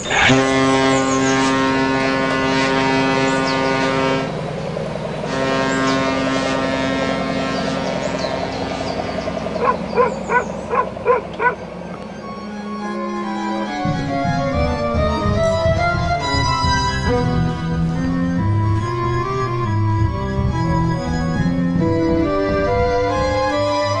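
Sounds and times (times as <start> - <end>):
low horn blasts: 0.0 - 24.0.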